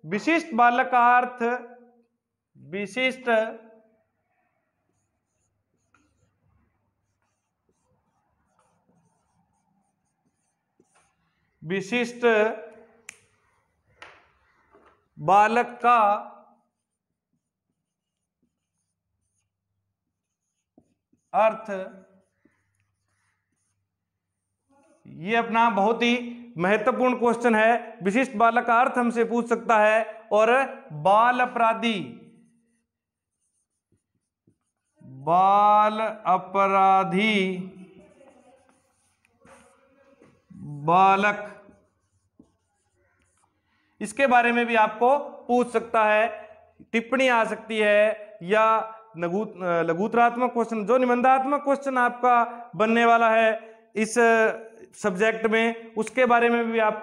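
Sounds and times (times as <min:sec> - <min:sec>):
marker writing on whiteboard: 0:03.8 - 0:52.2.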